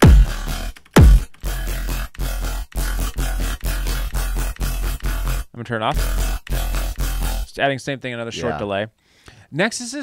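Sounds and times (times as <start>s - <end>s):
heavy bass hits with pitch drop: 0.0s - 7.5s
chopped growl bass: 0.0s - 7.6s
deep sub bass: 0.0s - 7.6s.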